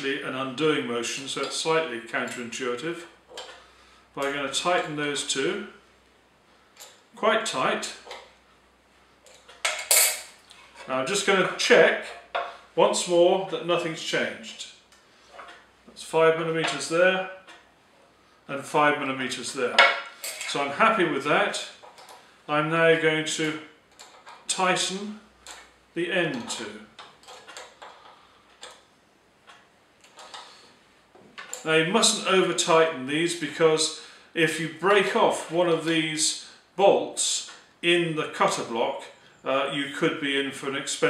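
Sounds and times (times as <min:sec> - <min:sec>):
spanner clattering on metal: 0:09.3 - 0:10.4.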